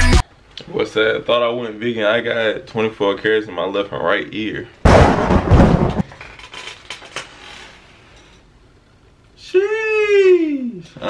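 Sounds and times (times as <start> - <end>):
loud noisy impact hit: 4.9 - 6.1.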